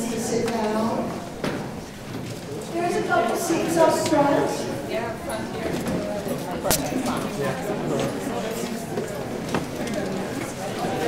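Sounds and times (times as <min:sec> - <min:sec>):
murmur of people talking: 0:00.0 - 0:11.0.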